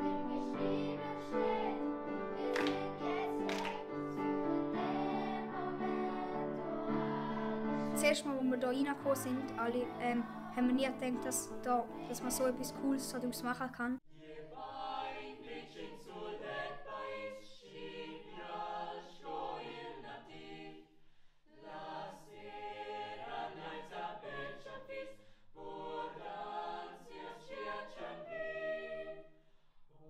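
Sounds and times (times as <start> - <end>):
choir singing a cappella: 0.0 - 30.0.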